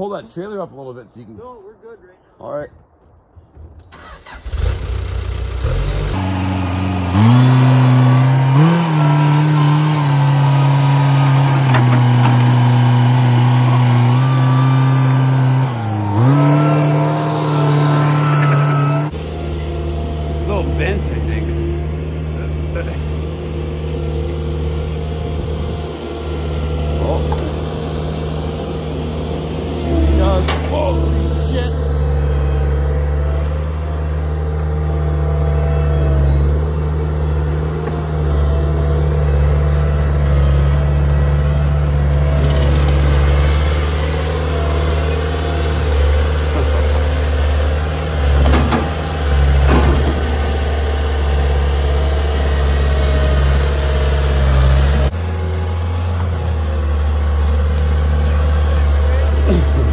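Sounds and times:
diesel engine running under load: 4.0s - 59.9s
short squeals: 7.0s - 19.7s.

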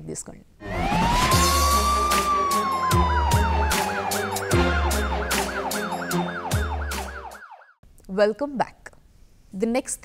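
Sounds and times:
electronic music with steady beat: 0.6s - 7.6s
warbling siren-like effect: 0.6s - 7.8s.

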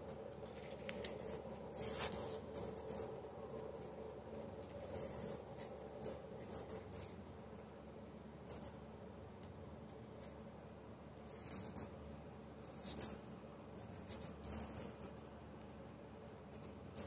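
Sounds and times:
paper coin wrappers rustling: 0.0s - 7.2s
coins clicking: 12.6s - 15.9s.

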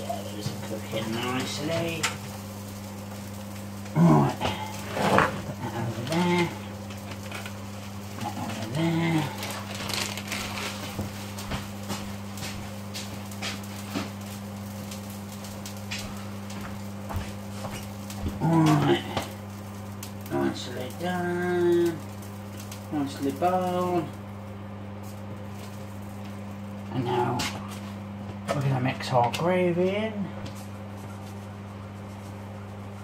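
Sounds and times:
low electrical hum: 0.0s - 33.0s.

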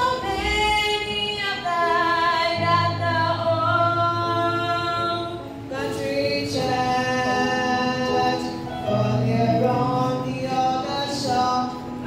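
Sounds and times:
choir singing a cappella: 1.3s - 12.0s.

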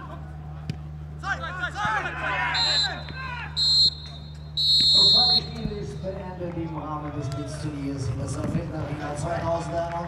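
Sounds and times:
players' voices: 1.1s - 4.0s, 4.8s - 10.0s
referee's whistle blast: 2.5s - 5.7s.

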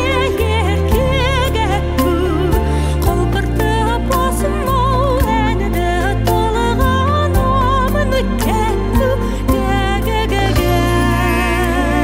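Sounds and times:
ballad backing music: 0.0s - 12.0s.

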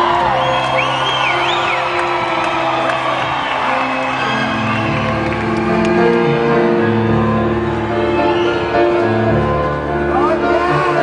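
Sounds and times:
audience whooping and cheering: 0.0s - 10.0s
live band with keyboard chords: 0.0s - 11.0s.

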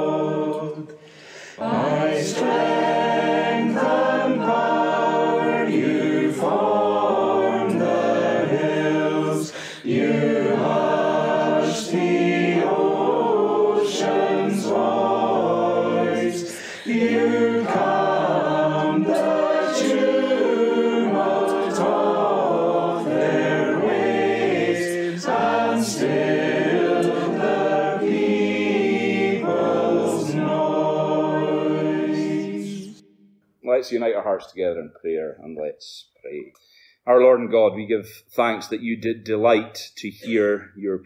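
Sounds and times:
group singing unaccompanied: 0.0s - 1.0s, 1.6s - 33.3s.

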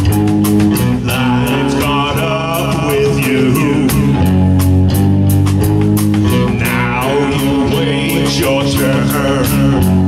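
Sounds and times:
bass guitar: 0.0s - 10.0s
distorted electric guitars: 0.0s - 10.0s
drum kit with cymbal strikes: 0.0s - 10.0s.

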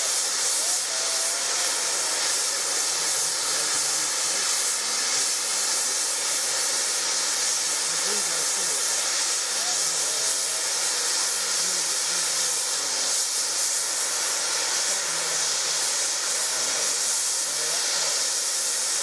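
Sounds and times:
steam hissing from safety valves: 0.0s - 19.0s.

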